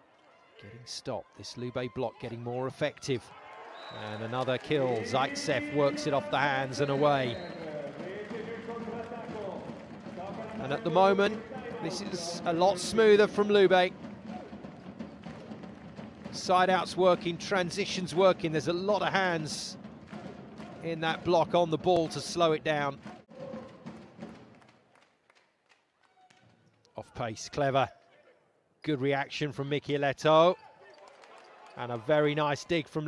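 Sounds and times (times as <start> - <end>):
faint hall ambience: 3.4 - 22.3.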